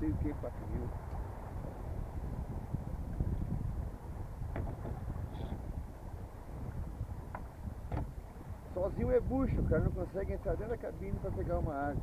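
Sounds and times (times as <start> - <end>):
wind buffeting microphone: 0.0 - 12.0
faint knock: 4.5 - 5.5.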